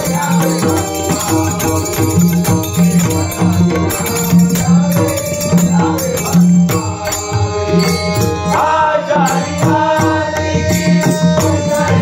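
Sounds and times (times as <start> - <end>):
harmonium sustained notes: 0.0 - 12.0
person singing: 0.0 - 12.0.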